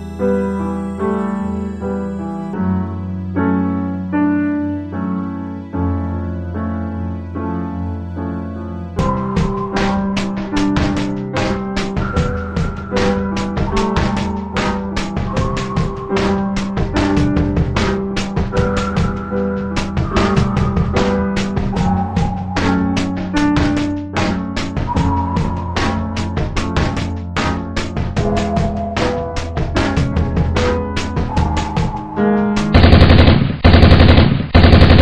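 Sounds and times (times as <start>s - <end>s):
machine-gun bursts: 32.8s - 35.0s.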